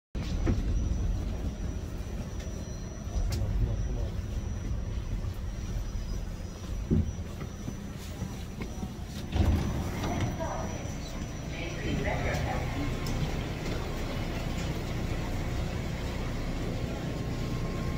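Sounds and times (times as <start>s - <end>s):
faint high whine: 0.2s - 17.9s
subway train rumble: 0.2s - 17.9s.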